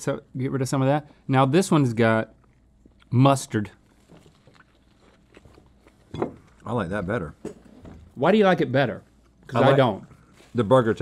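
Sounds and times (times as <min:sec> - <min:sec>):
faint chewing: 0:02.3 - 0:06.7.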